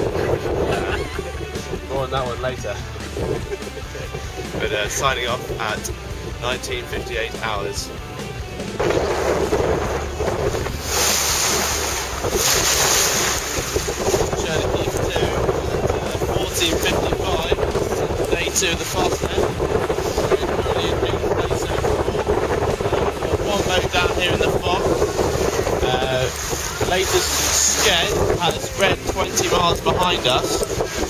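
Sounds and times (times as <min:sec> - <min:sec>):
waves rushing around boat: 0:00.0 - 0:31.0
wind buffeting microphone: 0:00.0 - 0:31.0.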